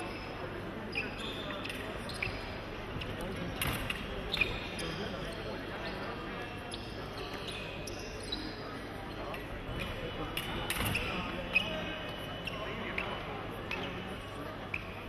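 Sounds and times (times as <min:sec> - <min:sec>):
hum of large hall: 0:00.0 - 0:15.0.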